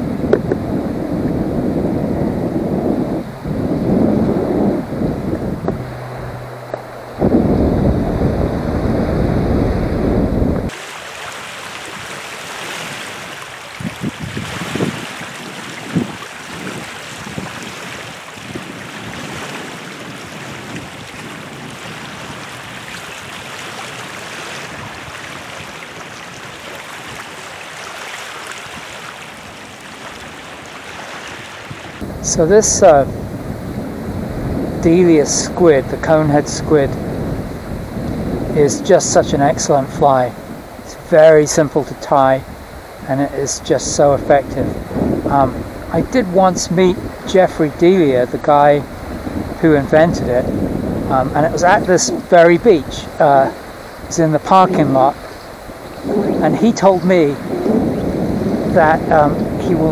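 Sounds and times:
light wind: 0.0s - 59.9s
wind buffeting microphone: 0.0s - 59.9s
waves lapping on rocky beach: 10.7s - 32.8s, 44.6s - 59.9s.

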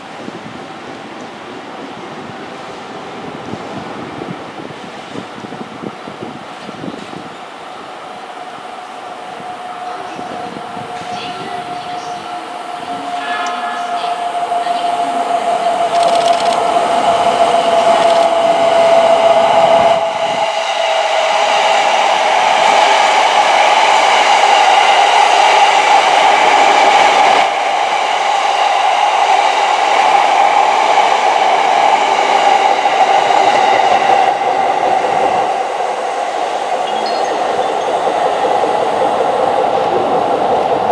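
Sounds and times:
electric train whine: 0.0s - 40.9s
wheels rushing on rail: 0.0s - 40.9s.

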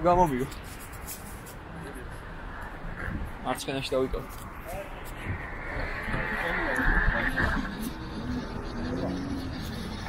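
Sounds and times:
street and riding noise: 0.0s - 10.0s
high whine: 2.2s - 10.0s.

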